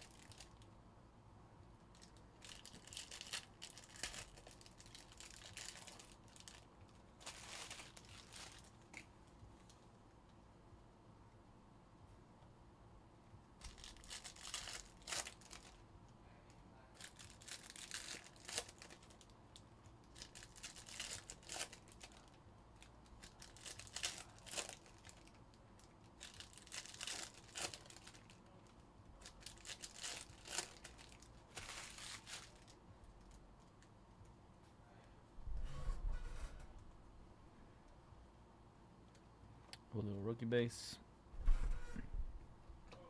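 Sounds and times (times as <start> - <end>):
card wrappers tearing and crinkling: 0.0 - 0.6, 2.0 - 9.1, 13.6 - 15.8, 17.0 - 19.3, 20.1 - 28.6, 29.2 - 32.8.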